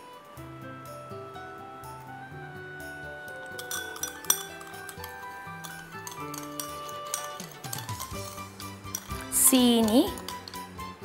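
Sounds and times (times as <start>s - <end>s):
background music of held notes: 0.0s - 11.0s
glass clinking: 3.2s - 11.0s.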